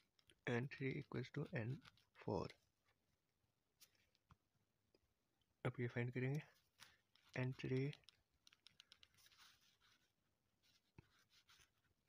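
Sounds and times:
pen scratching on paper: 8.6 - 11.8.

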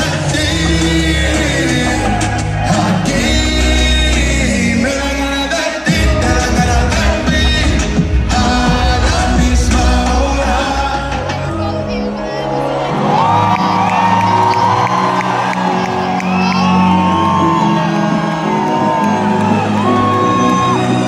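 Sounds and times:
live concert music: 0.0 - 21.0
crowd whooping and cheering: 0.2 - 4.9, 12.4 - 21.0.

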